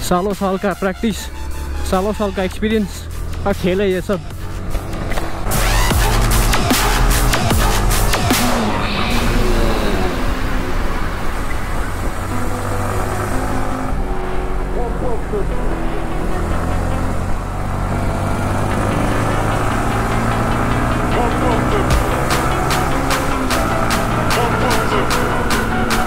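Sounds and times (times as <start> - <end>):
electronic music with fast beat: 1.2 - 10.3, 18.8 - 26.0
motorcycle engine revving: 1.4 - 26.0.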